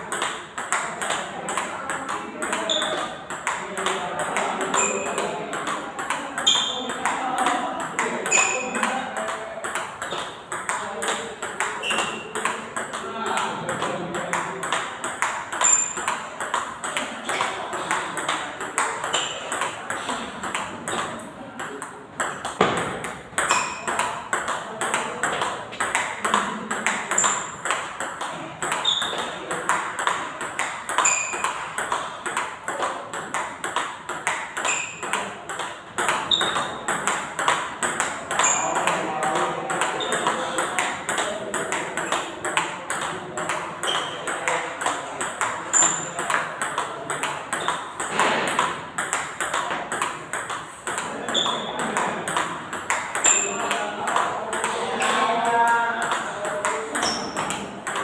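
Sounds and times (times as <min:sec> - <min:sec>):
table tennis ball hits on bat: 0:00.0 - 0:58.0
ball bouncing on table: 0:00.1 - 0:58.0.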